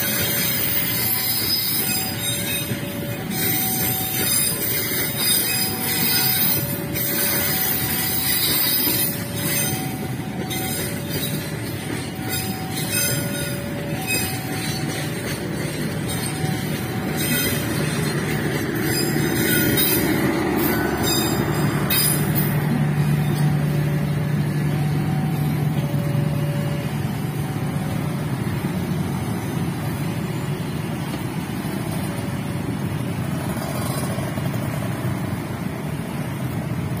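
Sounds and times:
train wheels clattering on rails: 0:00.0 - 0:37.0.

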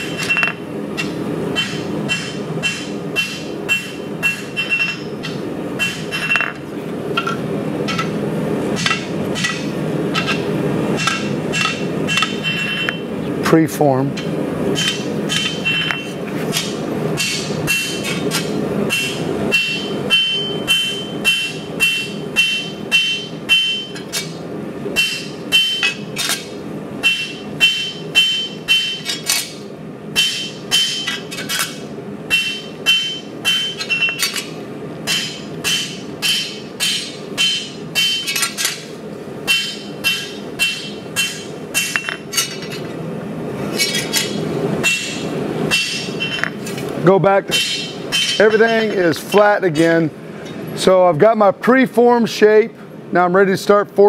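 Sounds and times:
hammer striking steel on anvil: 0:00.0 - 0:06.6, 0:08.8 - 0:13.0, 0:14.2 - 0:24.4, 0:25.0 - 0:29.6, 0:30.2 - 0:42.9, 0:43.8 - 0:46.8, 0:47.5 - 0:49.9.

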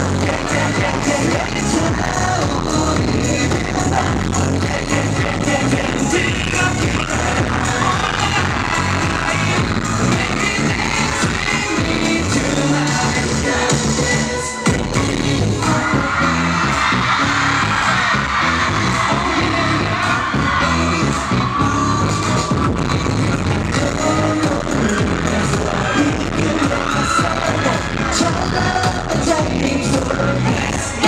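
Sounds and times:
group singing into microphones: 0:00.0 - 0:31.0
pop dance music over loudspeakers: 0:00.0 - 0:31.0.

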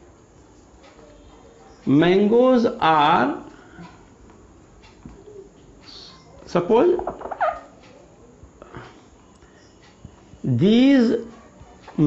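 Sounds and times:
marker scratching on whiteboard: 0:06.9 - 0:07.8.

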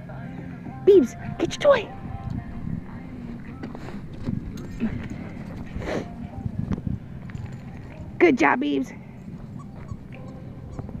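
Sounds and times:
faint dog whimpers: 0:09.5 - 0:11.0.

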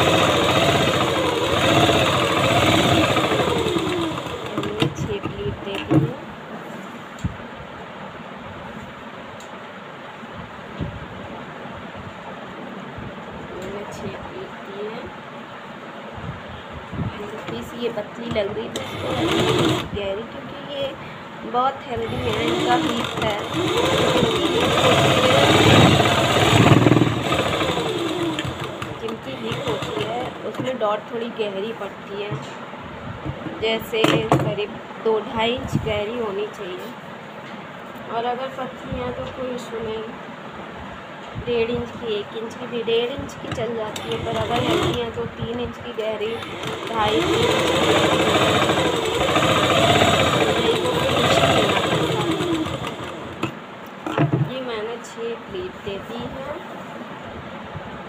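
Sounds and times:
sewing machine running: 0:00.0 - 0:05.0, 0:18.3 - 0:20.0, 0:22.0 - 0:30.6, 0:43.9 - 0:45.2, 0:46.2 - 0:53.5.

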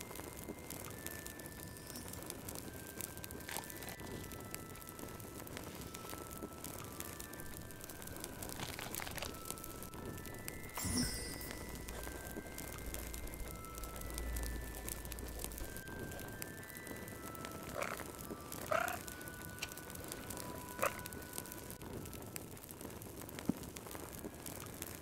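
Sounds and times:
soft slow music: 0:00.0 - 0:25.0
wood fire crackling: 0:00.0 - 0:25.0.

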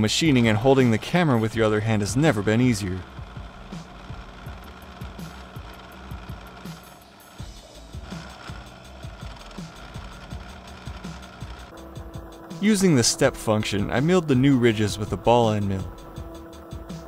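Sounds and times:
milling machine cutting metal: 0:00.0 - 0:17.0
background music with regular beat: 0:01.3 - 0:17.0.

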